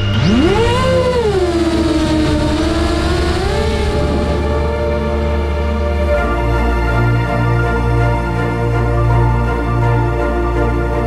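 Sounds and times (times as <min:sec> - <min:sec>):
drone motors whining: 0:00.0 - 0:08.6
background music: 0:00.0 - 0:11.0.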